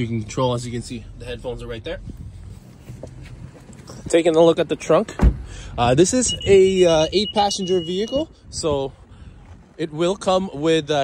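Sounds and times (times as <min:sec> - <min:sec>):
footsteps on pavement: 0:02.2 - 0:04.1.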